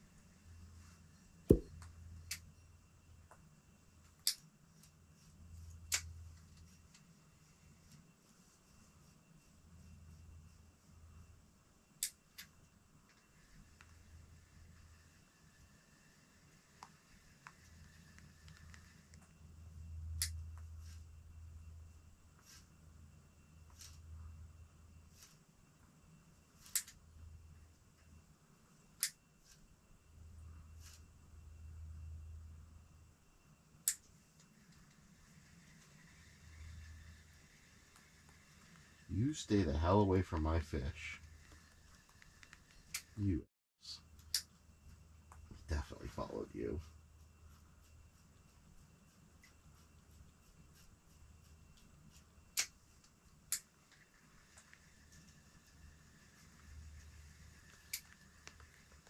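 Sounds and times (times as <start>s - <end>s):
sharp clicks: 33.8s - 34.9s.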